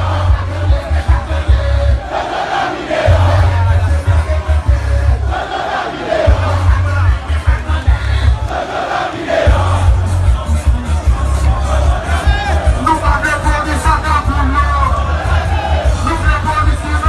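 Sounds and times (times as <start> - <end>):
loud bass-heavy music: 0.0 - 2.1, 3.0 - 5.5, 6.3 - 8.5, 9.4 - 17.0
crowd shouting and chanting: 0.0 - 17.0.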